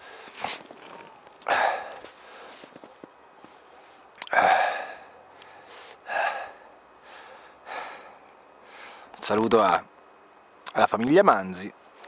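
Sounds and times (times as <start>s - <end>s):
man breathing hard: 0.0s - 0.7s, 1.4s - 2.7s, 4.3s - 9.1s.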